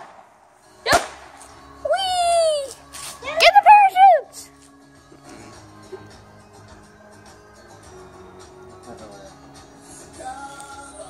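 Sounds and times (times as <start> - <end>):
firework bang: 0.0 - 1.4
children shouting and squealing: 1.8 - 4.6.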